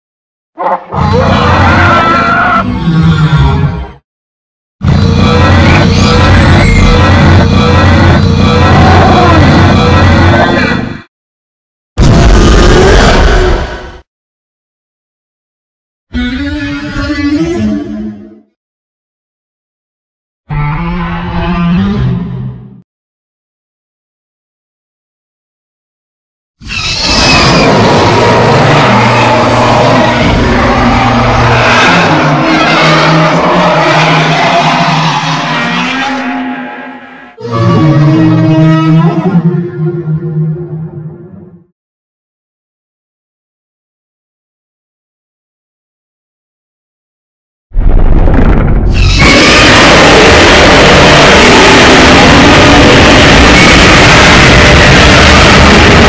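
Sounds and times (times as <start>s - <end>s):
harsh monster roar: 0.6s - 4.0s, 4.8s - 11.0s, 12.0s - 14.0s, 26.7s - 39.5s, 47.8s - 56.0s.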